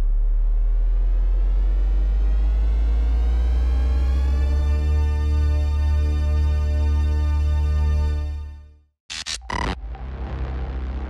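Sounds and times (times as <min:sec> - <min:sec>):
low drone with heavy bass: 0:00.0 - 0:08.5, 0:09.1 - 0:11.0
harsh pitched bursts: 0:09.1 - 0:09.8.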